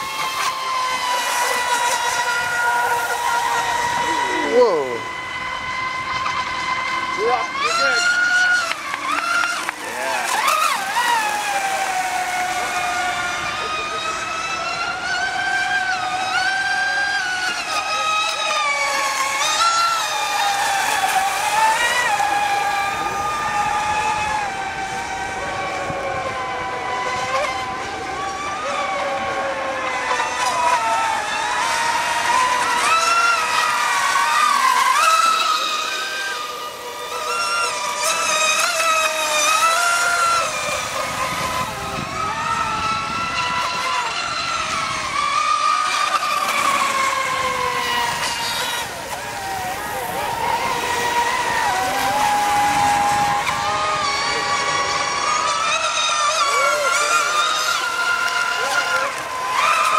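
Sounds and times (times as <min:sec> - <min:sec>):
electric boat motors whining: 0:00.0 - 0:59.9.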